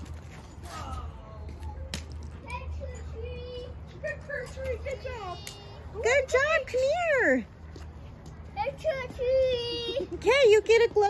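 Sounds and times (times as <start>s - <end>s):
children chattering: 0.8s - 7.4s, 8.4s - 11.0s.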